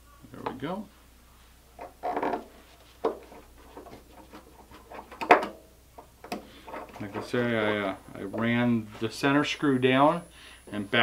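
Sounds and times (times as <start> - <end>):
tools clicking and knocking: 1.8 - 7.7.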